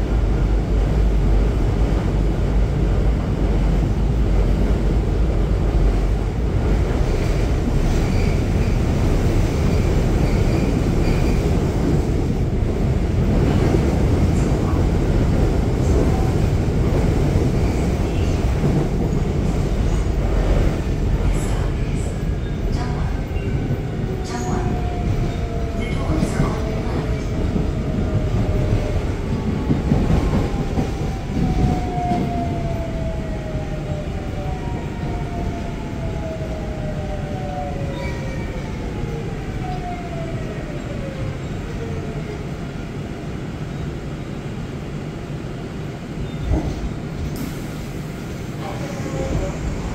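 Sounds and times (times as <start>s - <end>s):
train rumbling on track: 0.0s - 49.9s.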